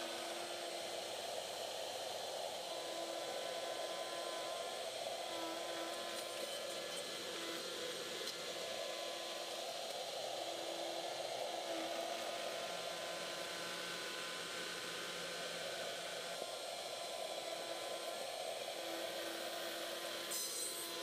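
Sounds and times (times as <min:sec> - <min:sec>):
router cutting wood: 0:02.2 - 0:21.0.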